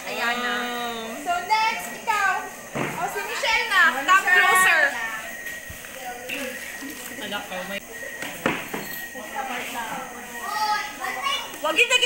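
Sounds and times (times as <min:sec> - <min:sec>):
girls excited chatter: 0:10.0 - 0:12.0.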